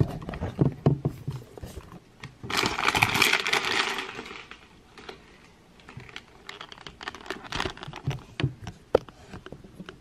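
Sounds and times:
snack bag crinkling: 0:02.5 - 0:08.2.

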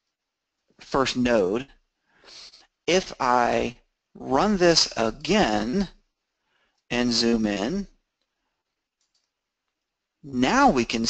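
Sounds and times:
very faint clicks: 0:08.2 - 0:09.9.

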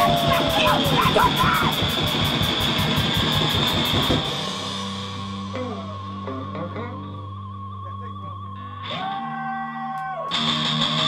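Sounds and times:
fast drumming: 0:00.0 - 0:05.9
rapid cymbal strokes: 0:00.0 - 0:06.3
electric guitar and bass: 0:00.0 - 0:11.0.

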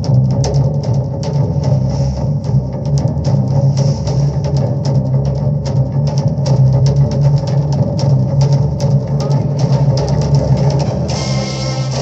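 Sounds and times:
busy drum-kit beat: 0:00.0 - 0:12.0
rock music: 0:00.0 - 0:12.0
strong steady bass: 0:00.0 - 0:12.0.

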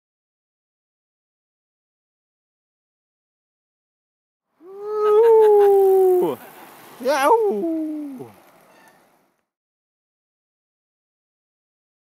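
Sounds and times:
person howling yell: 0:04.6 - 0:06.4, 0:07.0 - 0:08.3.

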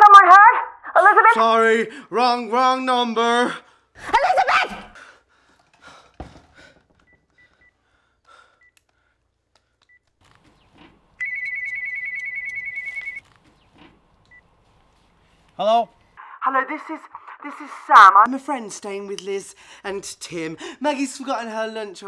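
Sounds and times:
electronic phone ringer trilling: 0:11.2 - 0:13.2
phone keypad beeps: 0:11.2 - 0:13.2.

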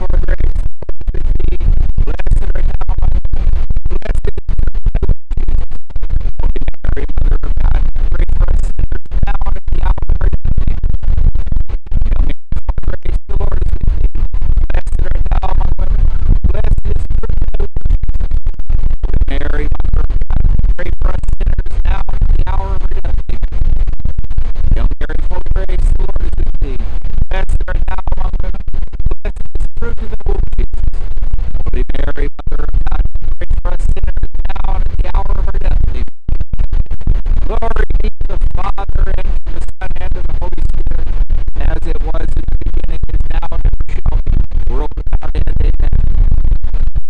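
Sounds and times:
wind buffeting microphone: 0:00.0 - 0:29.6, 0:30.2 - 0:47.0.

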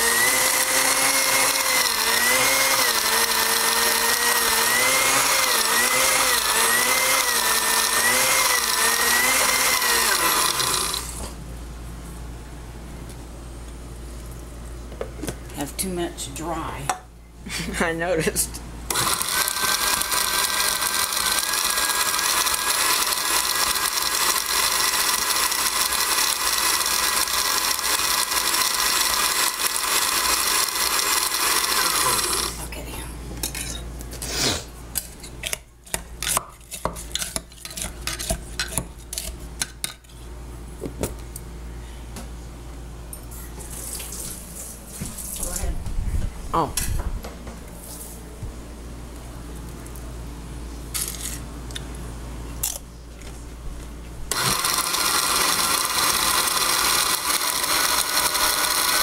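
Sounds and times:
blender motor whining: 0:00.0 - 0:11.4, 0:18.9 - 0:32.7, 0:54.3 - 0:59.0.

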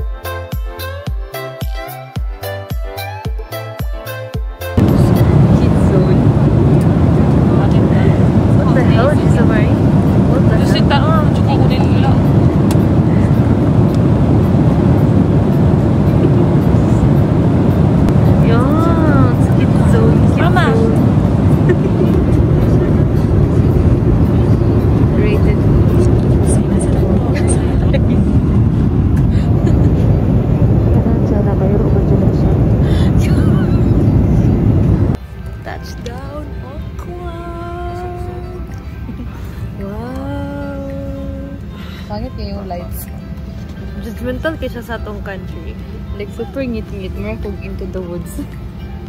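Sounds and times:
faint passenger voices: 0:04.8 - 0:49.0
jet cabin roar: 0:04.8 - 0:49.0.

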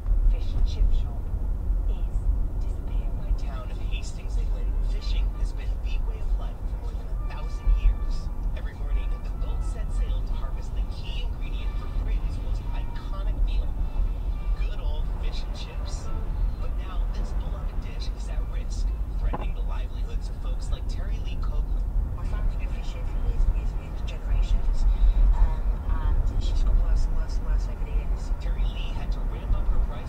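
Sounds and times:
car road and engine rumble: 0:00.0 - 0:30.0.

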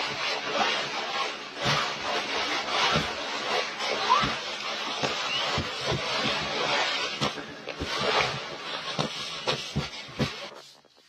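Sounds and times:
snow rake scraping through snow: 0:00.0 - 0:10.8.

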